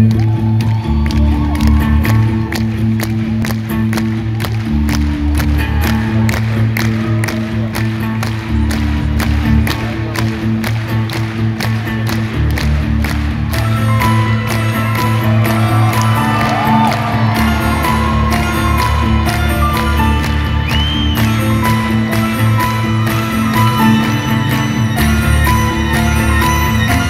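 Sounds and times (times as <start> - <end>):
crowd noise: 0.0 - 27.0
live band playing: 11.3 - 27.0.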